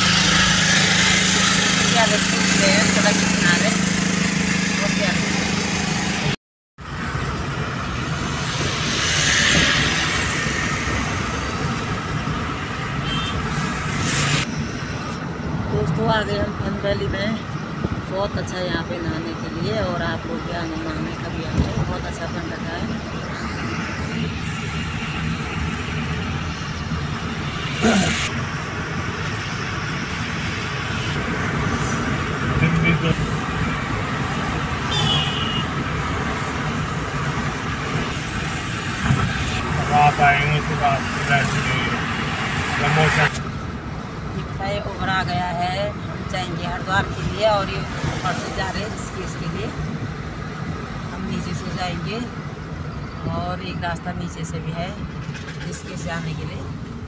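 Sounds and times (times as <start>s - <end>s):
car road and engine noise: 0.0s - 57.0s.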